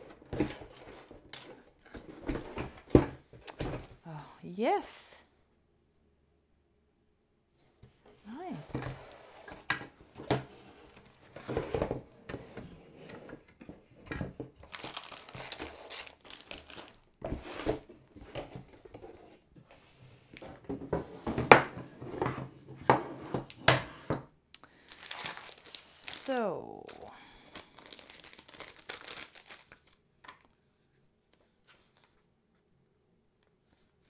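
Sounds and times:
cardboard and plastic rustling: 0.0s - 4.0s, 7.8s - 22.6s, 24.8s - 32.2s.

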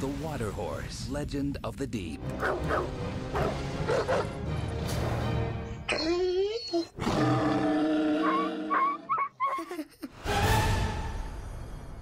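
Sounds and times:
dog howling: 5.9s - 7.0s, 7.7s - 9.5s.

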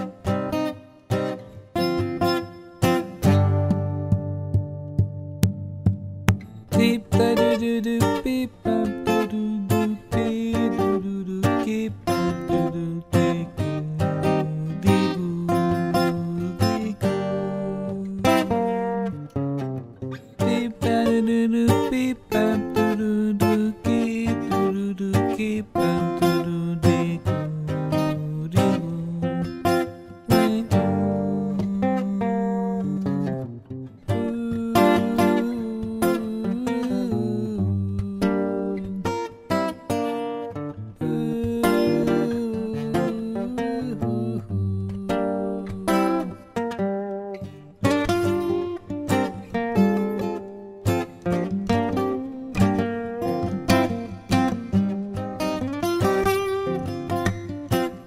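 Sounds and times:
plucked acoustic guitar music: 0.0s - 58.0s.

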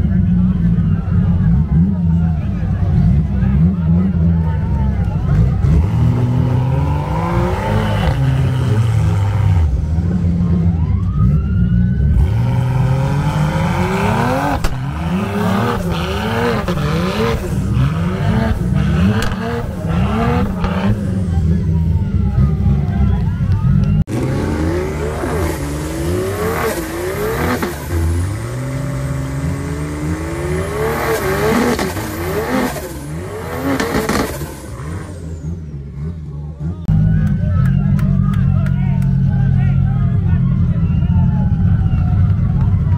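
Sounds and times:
car engine revving: 0.0s - 42.9s
crowd voices and shouting: 0.0s - 42.9s.

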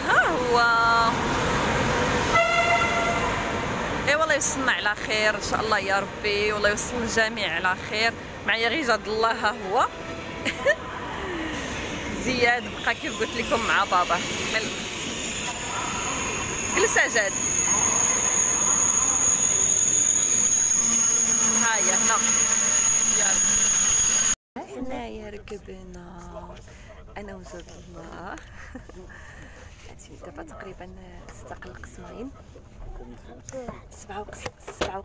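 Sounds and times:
high steady train whine: 0.0s - 24.4s
train cars rushing past: 0.0s - 24.4s
flat high-pitched tone: 13.0s - 24.4s.

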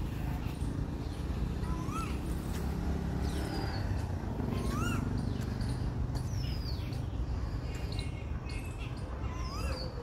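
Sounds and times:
birds calling: 0.0s - 10.0s.

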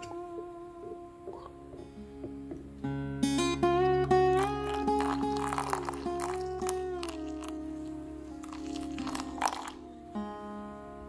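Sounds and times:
soft plucked guitar notes: 0.0s - 11.0s.

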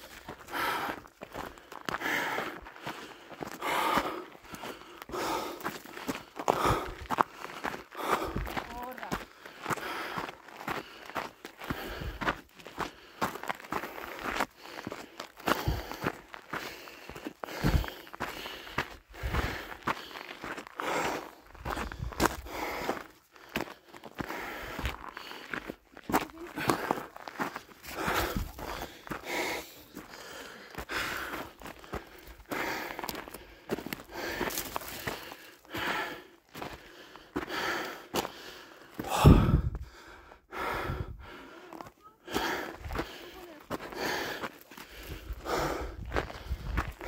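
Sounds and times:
footsteps crunching on gravel: 0.0s - 39.2s, 41.7s - 47.0s
person breathing hard: 0.0s - 47.0s.

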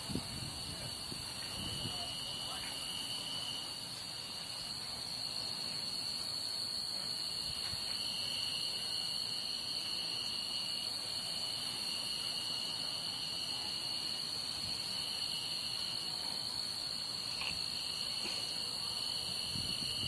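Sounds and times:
insects buzzing: 0.0s - 20.0s
lower insect whine: 0.0s - 20.0s.

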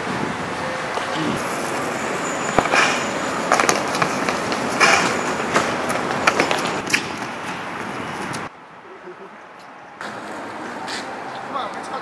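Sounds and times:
distant city traffic: 0.0s - 12.0s.

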